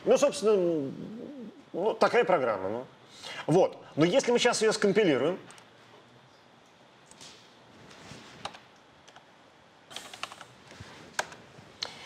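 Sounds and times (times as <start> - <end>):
computer keyboard keystrokes: 9.9 - 10.5.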